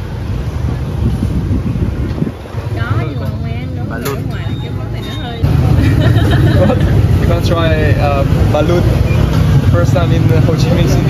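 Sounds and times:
rumble of passing vehicles: 0.0 - 11.0
people talking: 2.6 - 9.0, 9.7 - 11.0.

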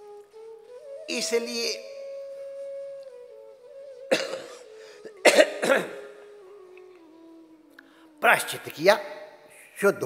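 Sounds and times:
man coughing into cloth: 4.1 - 4.6, 5.2 - 6.1.

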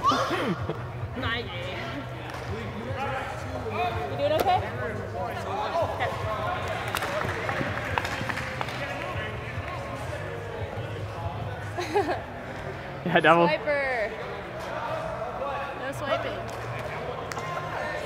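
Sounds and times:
players shouting in echoing hall: 0.0 - 1.0.

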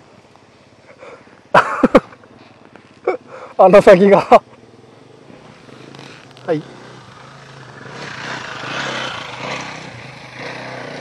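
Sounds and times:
dirt bike engine revving: 4.7 - 11.0.

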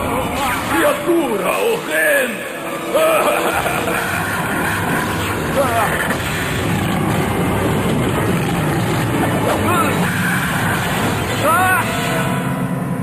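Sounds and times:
rumbling mechanical engine noise: 3.7 - 13.0.

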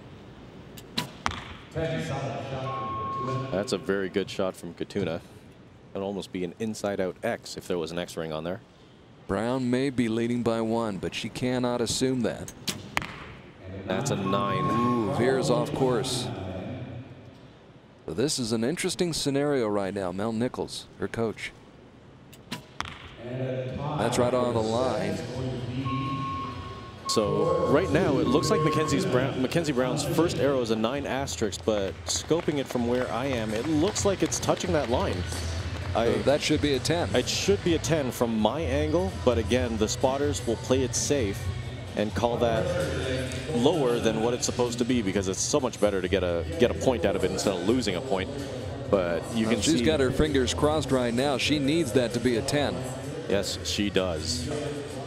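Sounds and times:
low indistinct voices: 13.6 - 17.1, 23.6 - 55.0
steady tone: 13.7 - 17.1, 24.1 - 31.0.

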